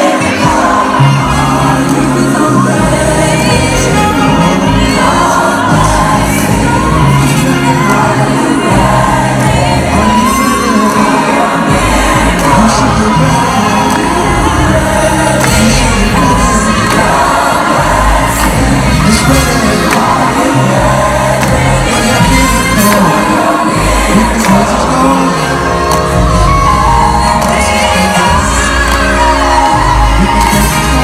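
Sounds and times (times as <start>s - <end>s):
crowd cheering: 0.0s - 31.0s
live concert music with singing: 0.0s - 31.0s.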